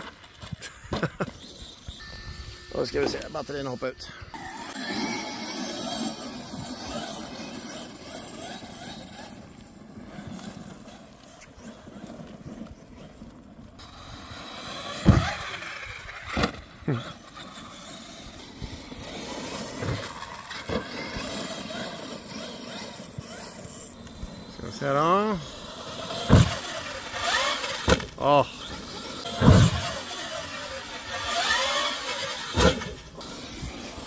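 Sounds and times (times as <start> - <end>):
tyres scrabbling on dirt: 0.0 - 2.0, 2.8 - 34.0
electric motor whine: 1.0 - 34.0
loud thump of truck landing: 15.0 - 15.4, 26.3 - 26.6.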